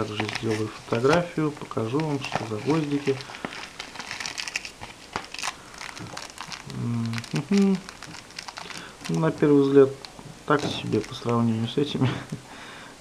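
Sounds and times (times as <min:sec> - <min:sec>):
packaging crinkling: 0:00.0 - 0:11.7
man's voice: 0:09.1 - 0:12.3.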